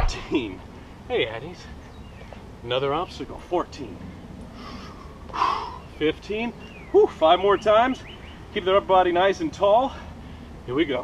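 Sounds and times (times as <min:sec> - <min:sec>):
man breathing heavily: 0:04.0 - 0:05.9, 0:09.9 - 0:10.7.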